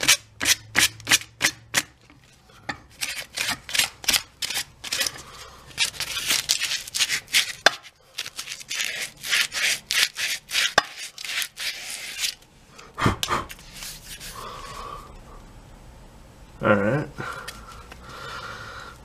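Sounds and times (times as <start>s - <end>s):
sandpaper rubbing on wood: 8.6s - 12.4s.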